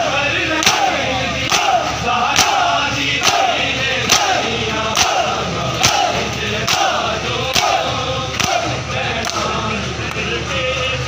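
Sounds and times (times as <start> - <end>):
men chanting: 0.0 - 11.0
men slapping chests in unison: 0.6 - 10.2.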